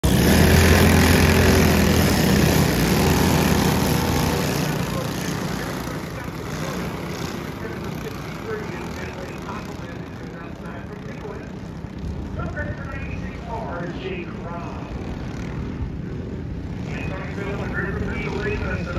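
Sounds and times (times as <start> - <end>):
racing kart engines: 0.0 - 18.9.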